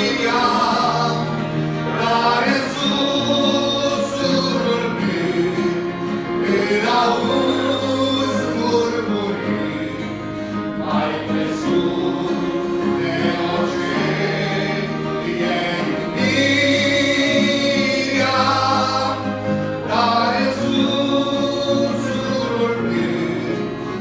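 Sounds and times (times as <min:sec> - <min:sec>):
instrumental accompaniment: 0:00.0 - 0:24.0
man singing a hymn: 0:00.0 - 0:24.0.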